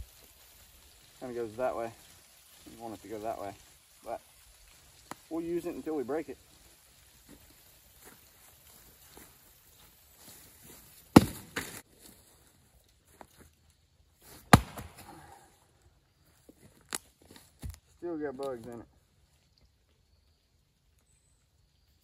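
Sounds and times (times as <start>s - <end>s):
axe striking a log: 11.1s - 11.8s, 14.5s - 15.1s.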